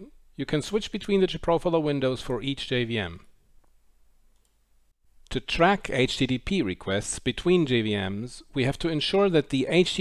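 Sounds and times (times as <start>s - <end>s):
faint click: 3.6s - 4.6s.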